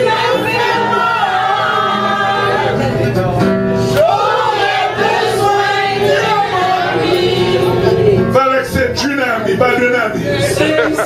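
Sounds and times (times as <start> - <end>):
woman singing lead: 0.0 - 3.1, 10.4 - 11.0
voices singing together: 0.0 - 8.6, 9.4 - 11.0
strummed acoustic guitar: 0.0 - 11.0.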